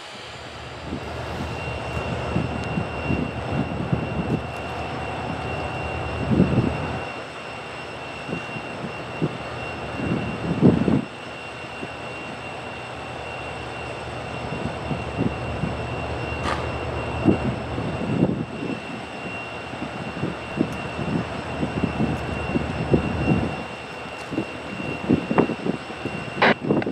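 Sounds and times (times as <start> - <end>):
diesel locomotives idling: 0.0 - 26.9.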